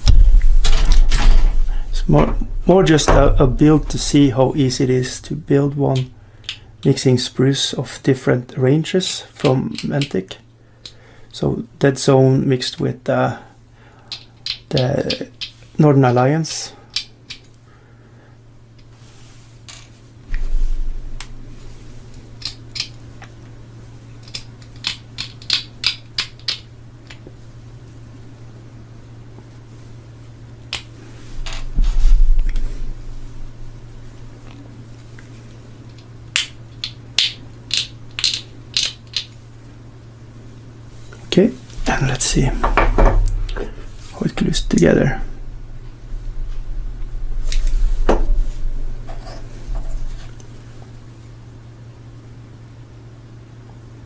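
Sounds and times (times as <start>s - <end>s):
plastic parts clicking: 24.2s - 27.2s, 35.9s - 39.4s.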